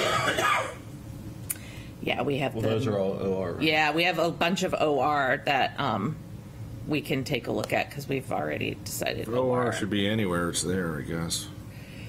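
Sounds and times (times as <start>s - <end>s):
person coughing: 0.0s - 0.8s.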